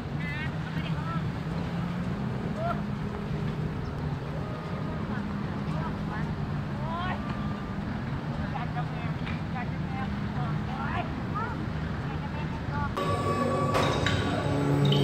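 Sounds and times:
distant voices: 12.9 - 15.0
motorboat engines droning: 13.0 - 15.0.

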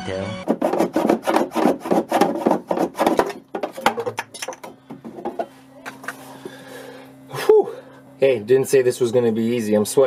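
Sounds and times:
low steady hum: 0.1 - 10.0
handsaw cutting plastic pipe: 0.4 - 3.4.

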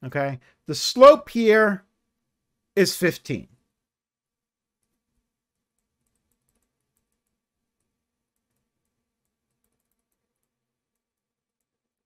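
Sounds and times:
stylus tapping on tablet: 4.8 - 11.8.

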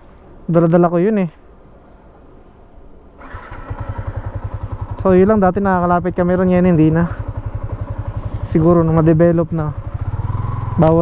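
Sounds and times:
motorcycle engine idling: 3.2 - 11.0.

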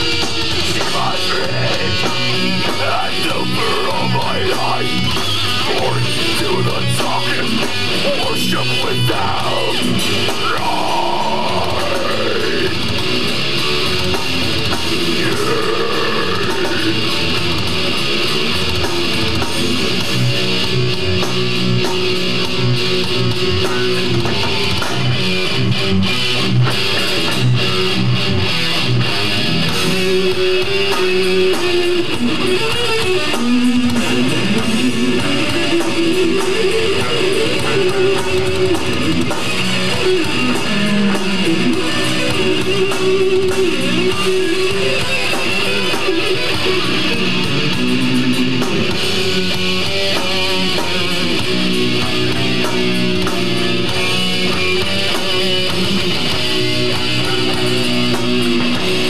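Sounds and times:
guitar notes sliding in pitch: 0.0 - 18.6
metal band playing live: 0.0 - 59.0.

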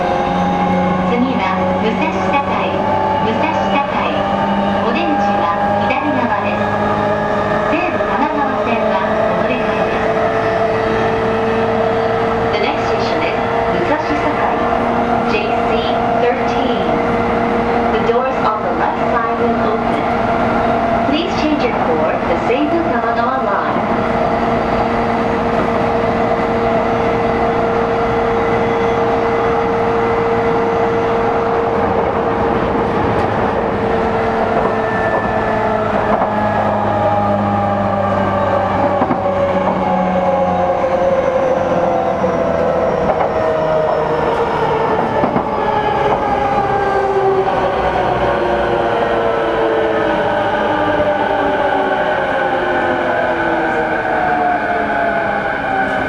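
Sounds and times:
train rail noise: 0.0 - 56.0.

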